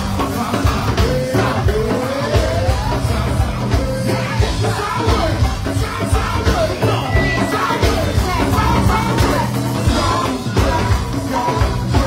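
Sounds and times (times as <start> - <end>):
drums and percussion beat: 0.0 - 12.0.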